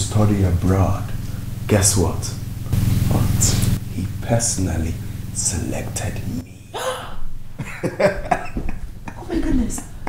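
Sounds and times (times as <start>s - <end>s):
person's astonished vocal bursts: 6.4s - 7.3s.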